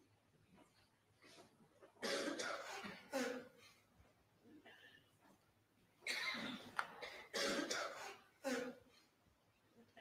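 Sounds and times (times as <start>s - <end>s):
person coughing: 2.0s - 3.8s, 6.1s - 8.9s.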